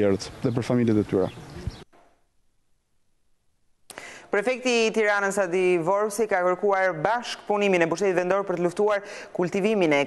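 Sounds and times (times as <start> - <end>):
faint background hiss: 0.0 - 6.0.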